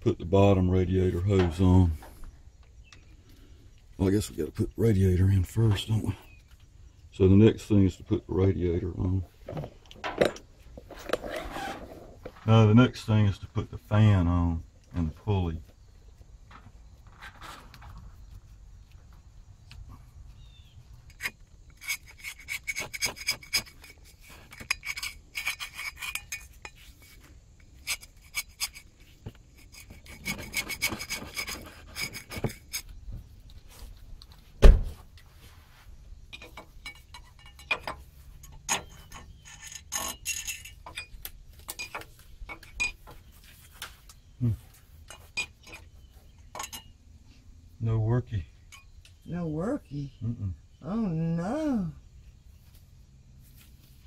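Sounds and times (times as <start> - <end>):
metal parts scraping and clicking: 21.0 - 33.0, 36.3 - 43.2.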